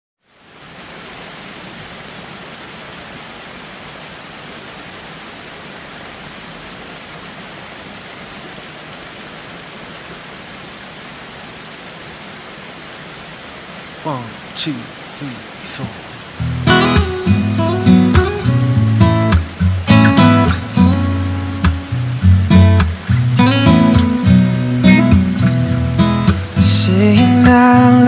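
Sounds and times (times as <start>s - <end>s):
waterfall roaring: 0.2s - 28.0s.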